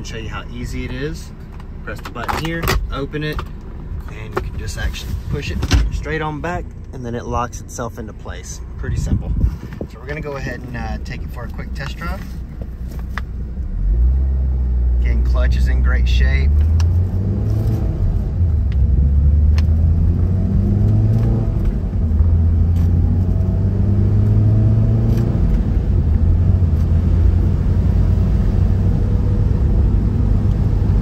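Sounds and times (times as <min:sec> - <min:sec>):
road and wind noise: 0:00.0 - 0:31.0
car engine accelerating: 0:08.6 - 0:31.0.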